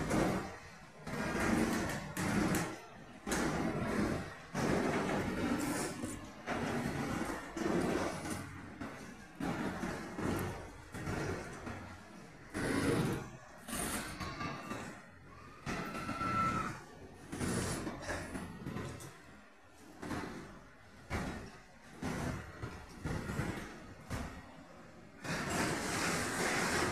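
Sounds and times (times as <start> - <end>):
wheels clattering over rail joints: 0.0 - 26.9
high squeal: 13.7 - 16.9.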